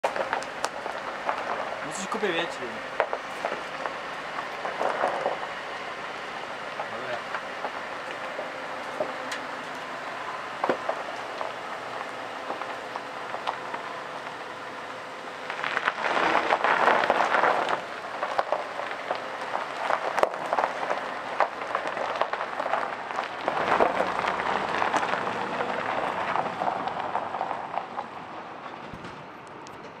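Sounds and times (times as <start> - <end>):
gravel crunching under tyres: 0.0 - 30.0.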